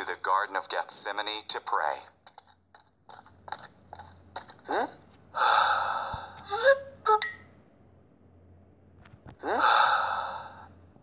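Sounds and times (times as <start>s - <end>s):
loud breathy gasp: 9.4s - 10.7s.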